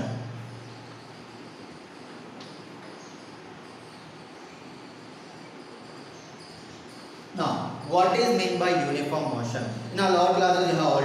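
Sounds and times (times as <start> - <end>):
low room hiss: 0.0 - 11.0
man speaking loudly: 7.4 - 11.0.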